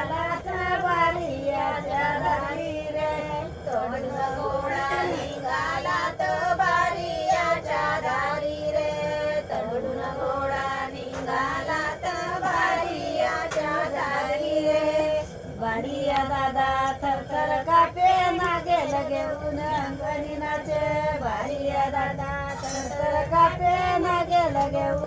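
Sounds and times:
women singing together: 0.0 - 25.0.

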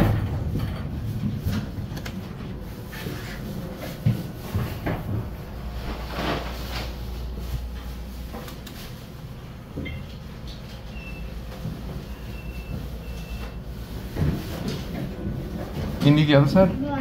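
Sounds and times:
elevator doors knocking shut: 0.0 - 2.6
low steady hum: 0.0 - 17.0.

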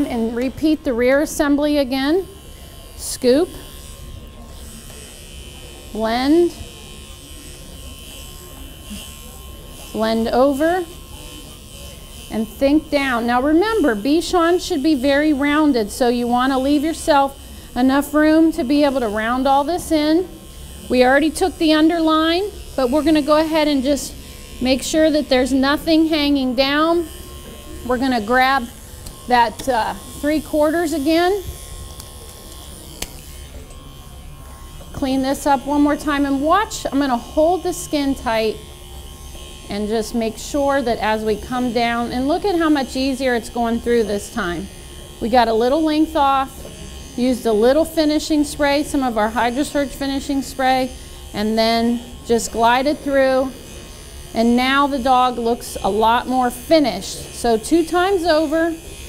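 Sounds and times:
electric dog clippers buzzing: 0.0 - 59.0.

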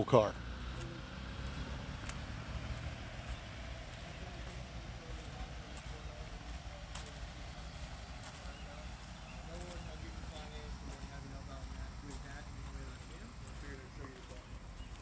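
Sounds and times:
faint distant voices: 0.0 - 15.0.

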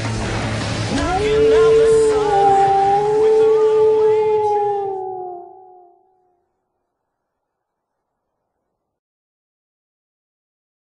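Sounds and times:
wolf howl: 1.0 - 6.4.

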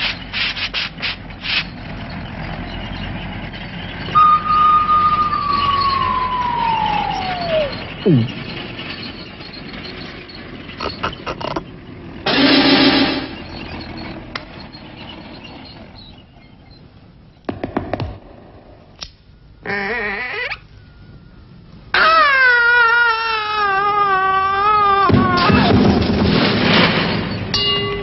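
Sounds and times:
brief wavering pitched tone: 4.1 - 8.5
wavering tone falling in pitch: 4.1 - 8.7
cartoon knocks: 5.4 - 8.4
short noisy burst: 12.3 - 14.0.

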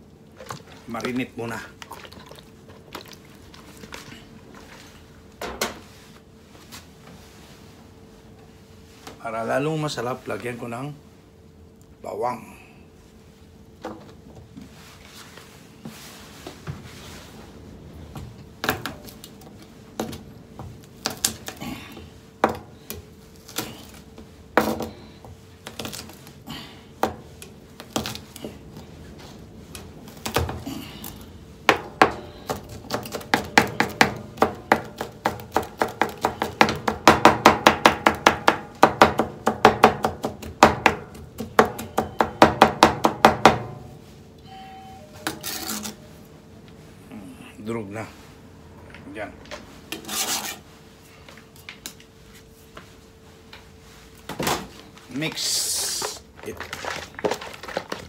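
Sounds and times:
knife chopping on plastic board: 31.7 - 43.7.

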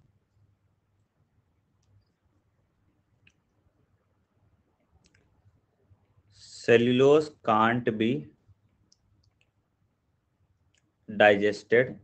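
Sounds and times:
person speaking: 11.1 - 12.0.

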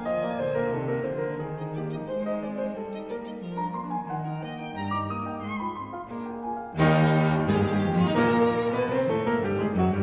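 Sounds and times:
piano trio classical music: 0.0 - 10.0.

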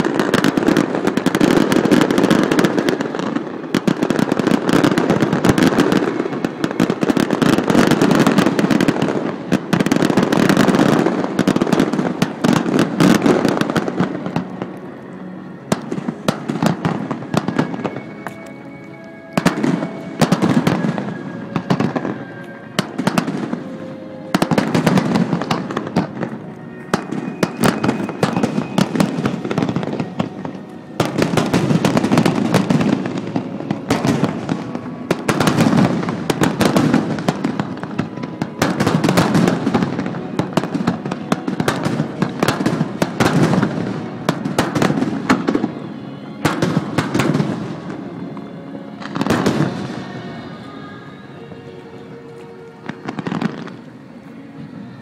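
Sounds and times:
fireworks bursting with bangs: 0.0 - 18.6, 19.2 - 55.0
firework crackling: 0.0 - 55.0.

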